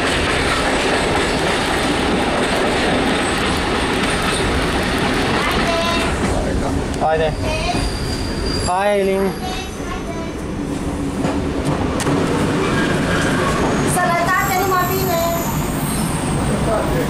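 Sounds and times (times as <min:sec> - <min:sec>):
diesel railcar running noise: 0:00.0 - 0:17.0.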